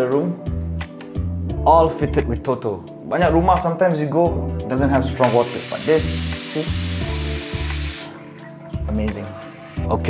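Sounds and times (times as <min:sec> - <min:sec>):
tap water hissing into sink: 0:05.2 - 0:08.2.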